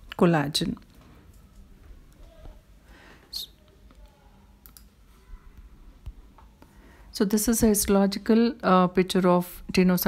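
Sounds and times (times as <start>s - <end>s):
computer mouse clicks: 3.9s - 4.9s.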